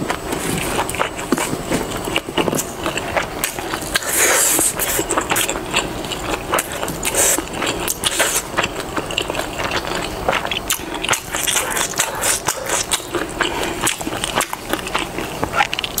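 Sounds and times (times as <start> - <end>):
chewing food: 0.0 - 16.0.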